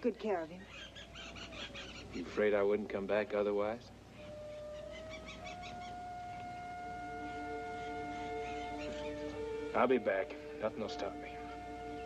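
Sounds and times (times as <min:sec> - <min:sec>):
orchestral film music: 0:01.5 - 0:12.0.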